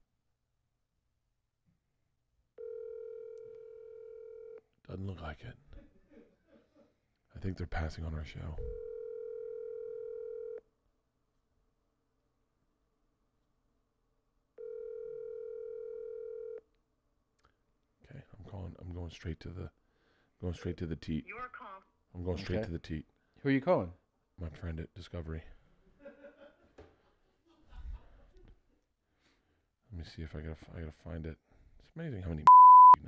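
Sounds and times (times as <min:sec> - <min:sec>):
telephone ringback tone: 0:02.6 - 0:04.6, 0:08.8 - 0:10.6, 0:14.6 - 0:16.6, 0:32.5 - 0:33.0.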